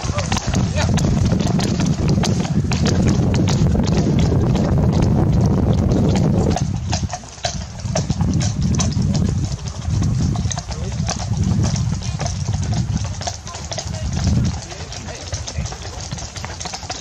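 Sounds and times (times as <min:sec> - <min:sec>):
horse hooves on grass: 0:00.0 - 0:17.0.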